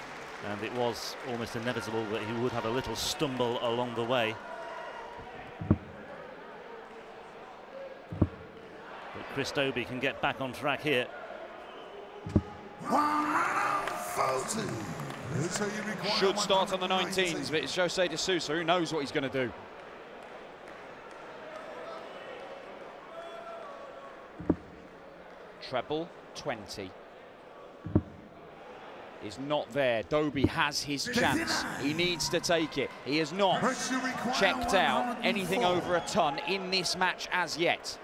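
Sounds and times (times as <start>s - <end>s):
hall background noise: 12.3s - 18.2s, 30.5s - 37.0s.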